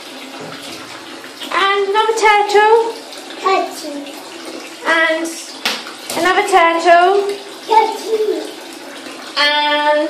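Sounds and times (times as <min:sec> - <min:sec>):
water running into bathtub: 0:00.0 - 0:10.0
toddler vocal sound: 0:07.7 - 0:08.6.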